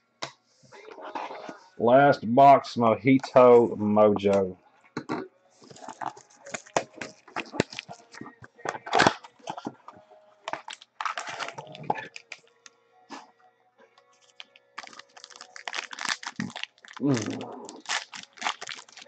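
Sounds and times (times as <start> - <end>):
plastic wrapping crinkling: 5.6 - 12.7, 14.0 - 19.0.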